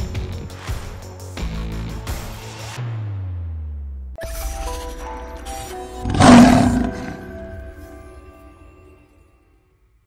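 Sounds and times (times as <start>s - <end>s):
lion roar: 6.0s - 7.6s.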